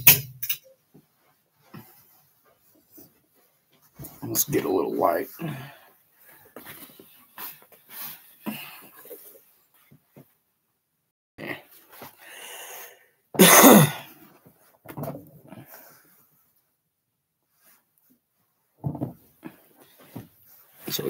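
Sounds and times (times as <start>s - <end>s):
rustling and handling knocks: 18.8s - 19.3s.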